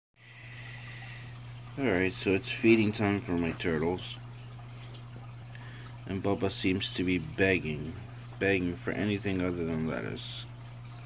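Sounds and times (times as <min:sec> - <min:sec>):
faint trickling water: 0:00.2 - 0:11.0
tank filter humming: 0:00.2 - 0:11.0.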